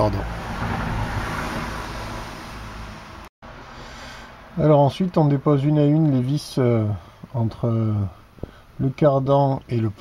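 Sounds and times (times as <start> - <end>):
road traffic rushing: 0.0 - 5.6.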